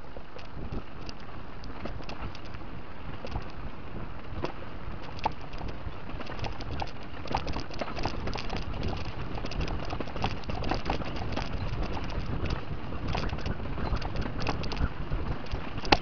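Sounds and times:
bike chain and frame rattling: 0:00.0 - 0:16.0
bike tyres crunching on gravel: 0:00.0 - 0:16.0
wind noise on microphone: 0:00.0 - 0:16.0.

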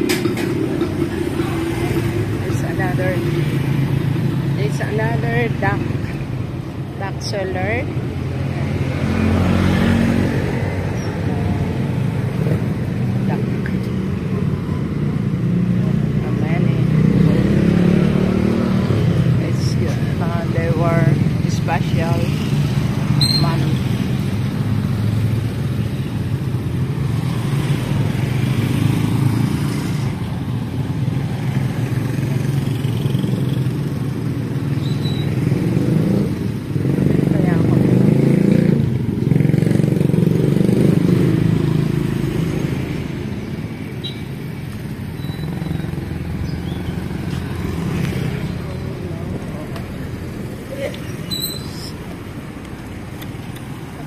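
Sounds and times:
small motorcycle engines passing: 0:07.6 - 0:54.0.

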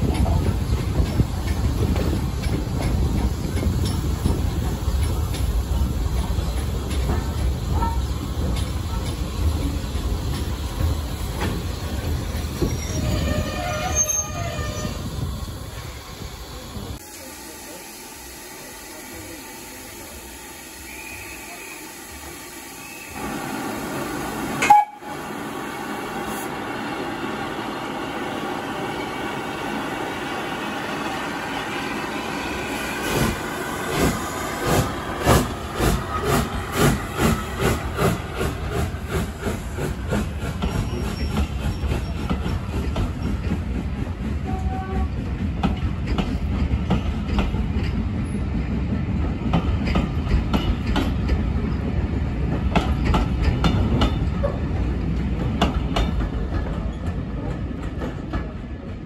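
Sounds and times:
coaches rumbling and clacking: 0:00.0 - 0:13.3, 0:33.0 - 0:59.0
steam locomotive exhaust beats: 0:00.0 - 0:59.0.

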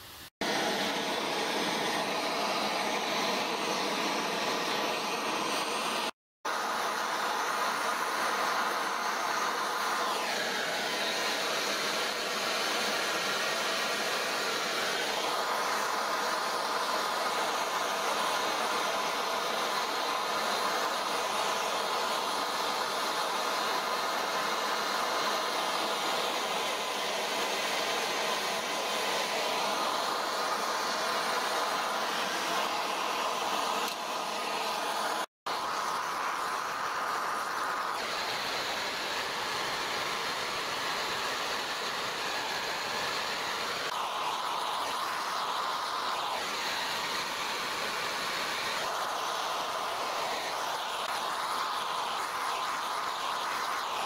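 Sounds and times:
blowtorch hissing: 0:00.0 - 0:54.0.

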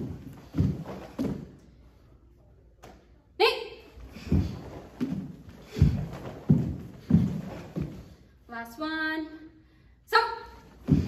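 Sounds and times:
bare feet stamping on hardwood floor: 0:00.0 - 0:01.6, 0:04.2 - 0:08.2.

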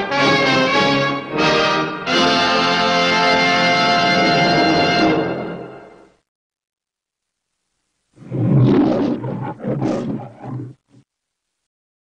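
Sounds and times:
lion roaring: 0:08.2 - 0:11.0.

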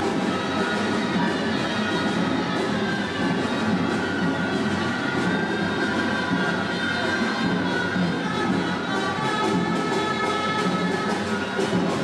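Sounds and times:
street band music: 0:00.0 - 0:12.0.

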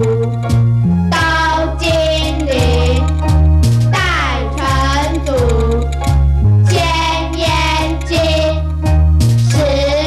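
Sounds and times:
bouncing bass line: 0:00.0 - 0:10.0
child singing: 0:01.1 - 0:03.1, 0:04.0 - 0:05.8, 0:06.7 - 0:08.6, 0:09.5 - 0:10.0.

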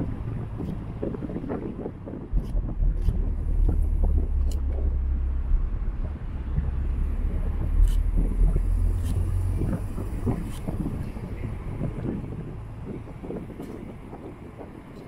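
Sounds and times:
car road and engine noise: 0:00.0 - 0:15.0
wind rumbling on microphone: 0:00.0 - 0:15.0.

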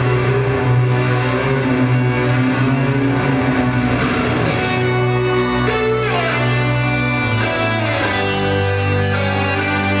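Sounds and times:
distorted electric guitar: 0:00.0 - 0:10.0
keyboard chords: 0:00.0 - 0:10.0
steady low drone: 0:00.0 - 0:10.0.

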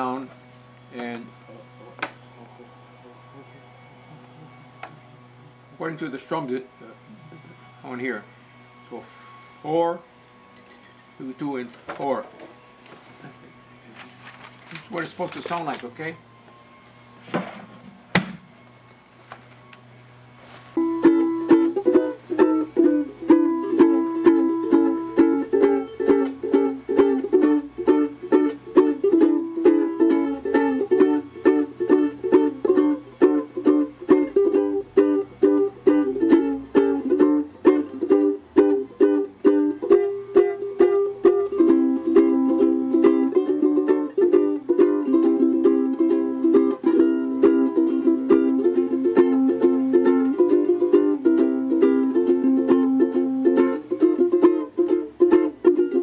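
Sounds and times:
ukulele strumming: 0:11.3 - 0:16.0, 0:20.8 - 0:56.0.

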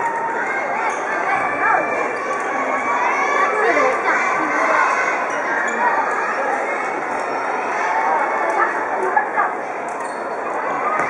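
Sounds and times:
children calling out: 0:00.0 - 0:11.0
hubbub of busy sports hall: 0:00.0 - 0:11.0.

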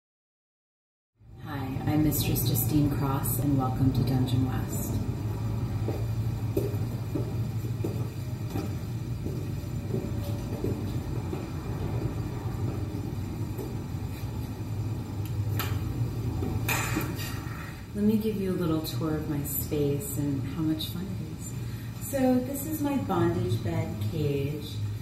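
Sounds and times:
low rumble: 0:01.2 - 0:18.0.

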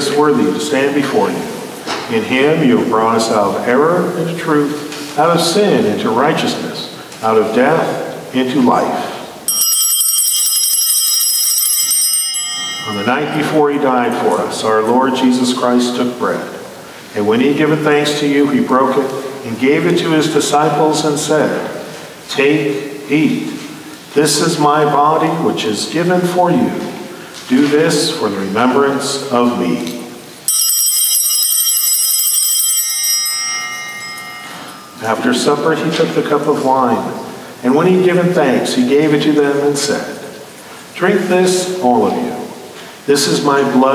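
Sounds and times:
small altar bells jingling: 0:09.5 - 0:14.7, 0:30.4 - 0:36.4.

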